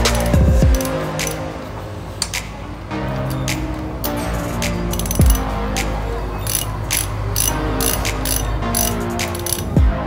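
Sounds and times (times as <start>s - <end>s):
socket ratchet clicking: 0.0s - 1.4s, 3.2s - 5.4s, 6.4s - 9.8s.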